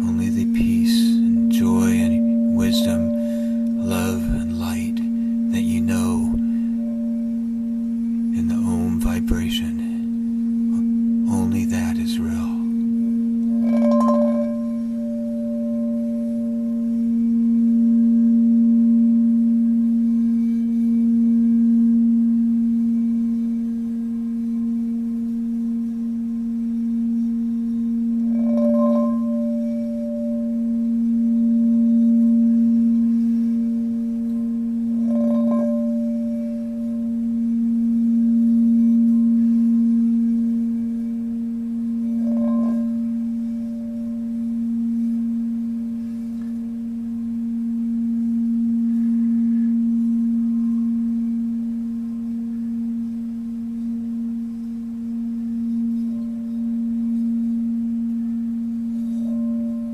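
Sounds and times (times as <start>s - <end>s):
singing bowl low tone: 0.0s - 59.9s
singing bowl strike ringing: 0.0s - 59.9s.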